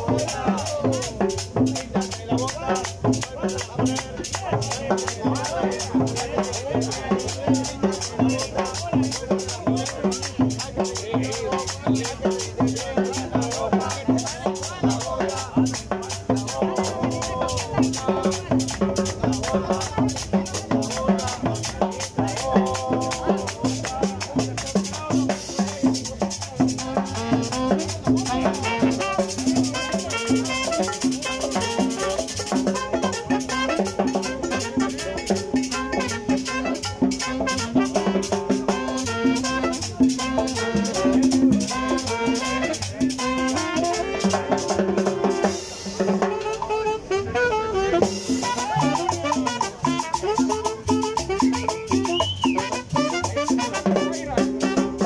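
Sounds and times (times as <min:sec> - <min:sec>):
live salsa music: 0:00.0 - 0:55.0.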